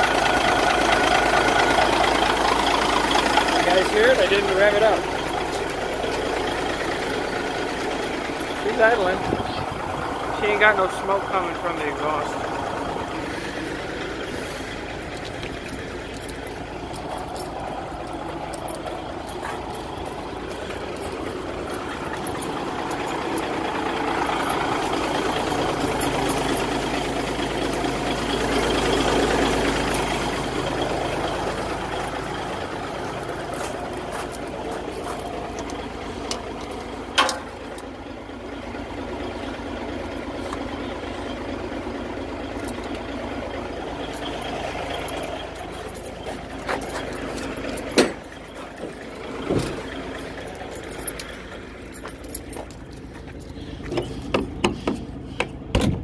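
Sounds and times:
diesel truck engine idling: 0.0s - 56.0s
person talking: 3.6s - 5.2s, 8.5s - 12.5s.

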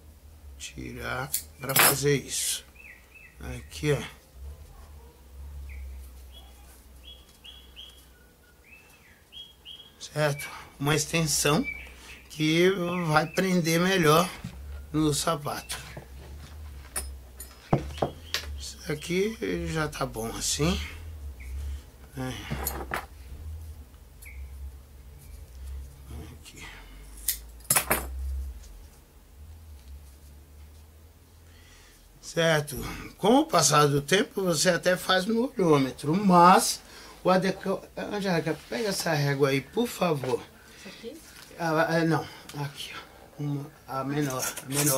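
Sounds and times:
faint low hum: 0.0s - 44.9s
small bird chirping: 2.7s - 3.9s, 5.6s - 13.9s, 17.4s - 19.0s, 24.2s - 24.7s.

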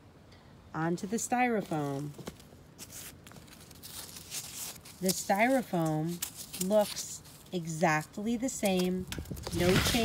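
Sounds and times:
fingers rustling through soil: 1.2s - 10.0s.

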